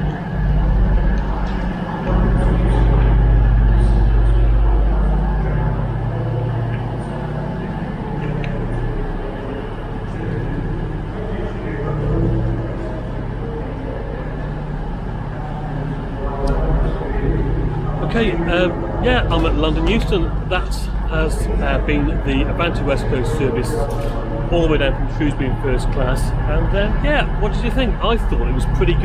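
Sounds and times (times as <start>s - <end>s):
diesel engines idling: 0.0s - 29.0s.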